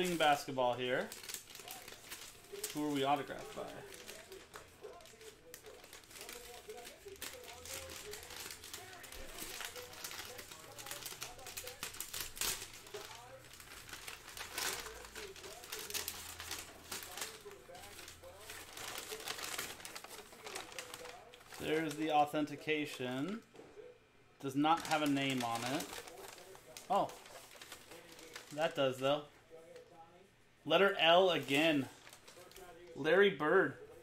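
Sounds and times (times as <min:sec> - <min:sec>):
packing paper crinkling and tearing: 0:00.0 - 0:23.4, 0:24.4 - 0:30.0, 0:30.7 - 0:33.0
faint speech: 0:01.0 - 0:30.4.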